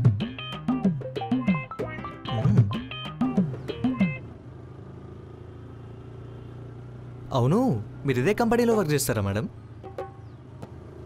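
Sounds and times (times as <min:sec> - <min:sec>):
motorcycle engine running: 0:02.4 - 0:08.5, 0:09.6 - 0:11.0.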